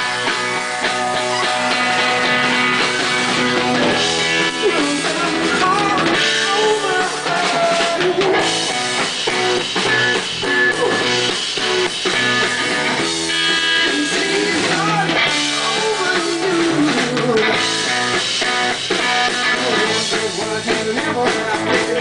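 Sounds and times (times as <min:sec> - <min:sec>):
electric guitar bent notes: 0:00.0 - 0:20.9
rock band playing: 0:00.0 - 0:22.0.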